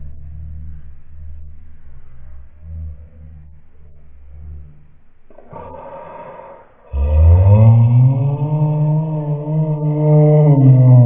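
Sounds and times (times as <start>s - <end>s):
deep electronic drone: 0.0s - 11.0s.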